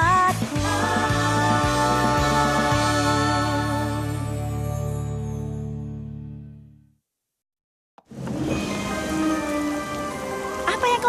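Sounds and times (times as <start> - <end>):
rain falling: 8.1 - 11.0
soft background music: 8.1 - 11.0.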